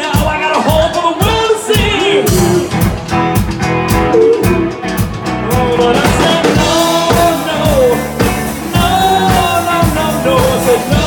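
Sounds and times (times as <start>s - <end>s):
drum kit beat: 0.0s - 11.0s
electric guitar: 0.0s - 11.0s.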